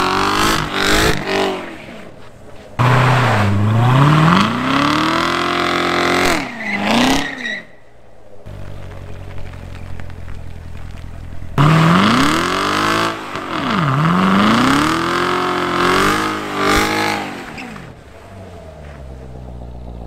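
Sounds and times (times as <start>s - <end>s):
car engine idling and revving: 0.0s - 20.0s
tires spinning: 0.0s - 20.0s.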